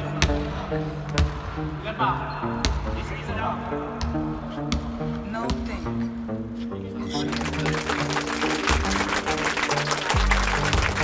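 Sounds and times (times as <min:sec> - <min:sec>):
background music: 0:00.0 - 0:11.0
basketball bouncing on hardwood floor: 0:01.1 - 0:01.4, 0:04.0 - 0:05.8
players shouting: 0:07.0 - 0:11.0.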